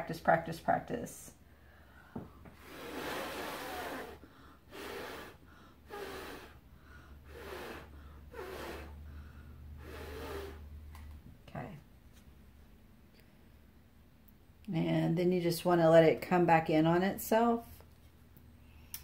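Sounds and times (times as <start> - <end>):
person blowing air through lips: 2.5 - 10.8.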